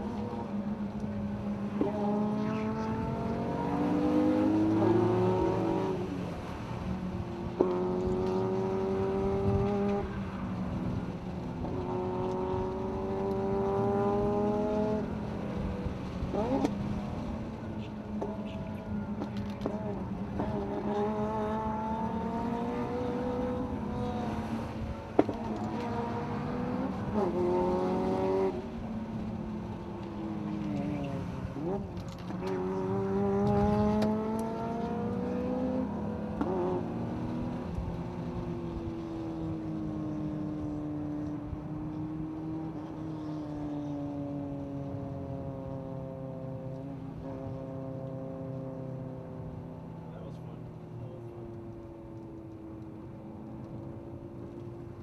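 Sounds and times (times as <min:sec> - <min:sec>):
car engine revving: 0:00.0 - 0:06.9, 0:07.5 - 0:55.0.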